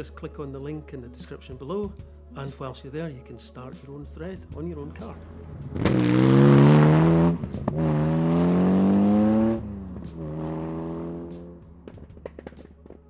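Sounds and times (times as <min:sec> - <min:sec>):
car engine accelerating hard: 0:05.4 - 0:12.6.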